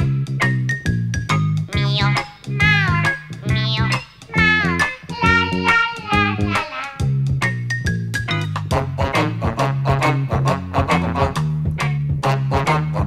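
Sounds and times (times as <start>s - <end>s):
steady bass line: 0.0s - 5.5s
cat meowing: 1.7s - 5.4s
plucked notes: 1.7s - 6.7s.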